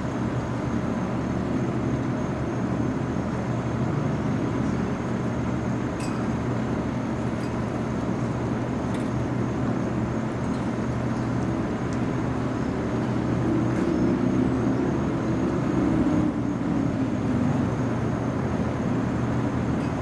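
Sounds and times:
faint high-pitched whine: 0.0s - 20.0s
low engine rumble: 0.0s - 20.0s
light ticks: 11.4s - 12.1s.

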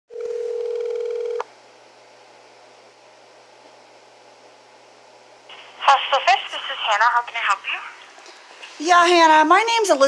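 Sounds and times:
steady electronic phone tone: 0.1s - 1.4s.

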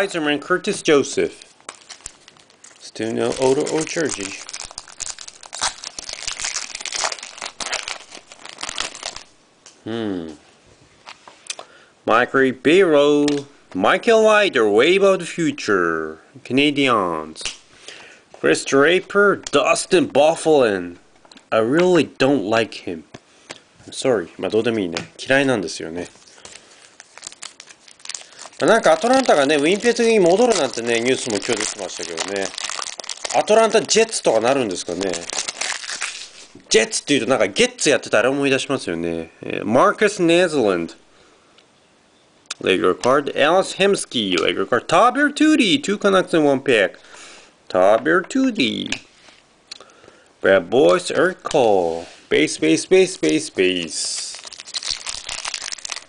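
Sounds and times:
man talking: 0.0s - 1.5s, 2.8s - 4.6s, 9.8s - 10.5s, 12.1s - 17.5s, 18.4s - 23.2s, 23.8s - 26.2s, 28.6s - 35.4s, 36.6s - 41.0s, 42.5s - 47.0s, 47.7s - 49.1s, 50.4s - 54.5s
wrapper crinkling: 0.7s - 9.4s, 26.0s - 37.4s, 53.0s - 56.0s.

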